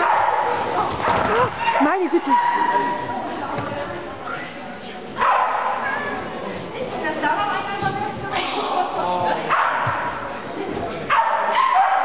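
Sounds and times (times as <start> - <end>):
dog barking: 0.0 - 3.0, 5.2 - 6.2, 9.5 - 10.1, 11.1 - 12.0.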